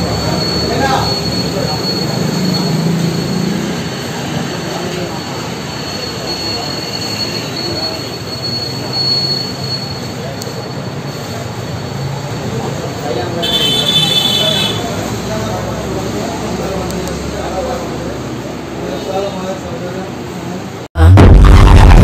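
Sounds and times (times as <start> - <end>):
indistinct voices: 21.0 - 22.0.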